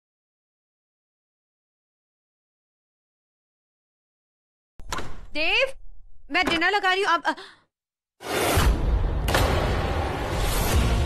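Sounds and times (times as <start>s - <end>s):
woman speaking: 5.3s - 7.6s.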